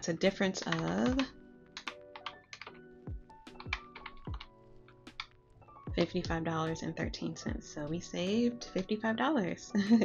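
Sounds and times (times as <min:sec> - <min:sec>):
soft background music: 0:00.0 - 0:10.0
calculator buttons clicking: 0:00.5 - 0:02.7.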